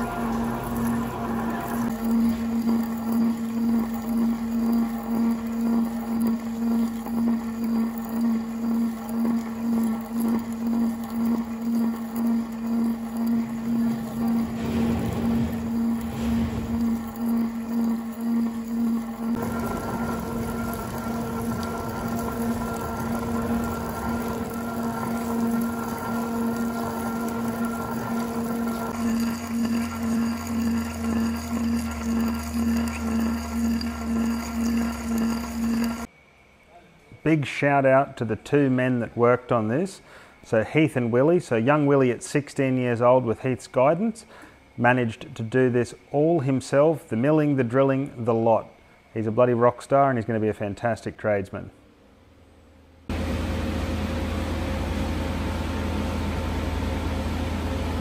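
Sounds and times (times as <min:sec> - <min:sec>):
boring bar humming while cutting steel: 0:00.0 - 0:36.1
high machine whine: 0:00.0 - 0:50.5.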